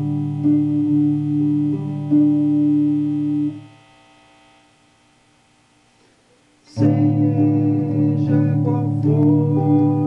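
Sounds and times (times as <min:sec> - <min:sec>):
electric guitar chord: 0:00.0 - 0:10.0
faint amplifier hum: 0:00.0 - 0:10.0.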